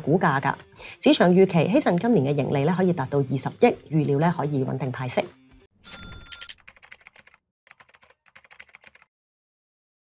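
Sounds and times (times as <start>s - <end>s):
short chime: 5.8s - 6.6s.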